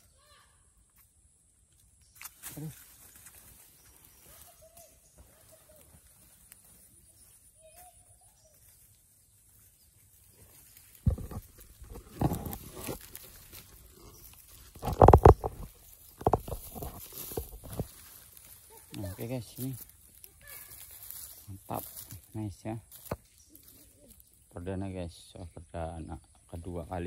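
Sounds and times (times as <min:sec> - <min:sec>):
camera rustling in dry grass: 0:02.2 - 0:24.3
faint wavering animal calls: 0:02.4 - 0:22.2.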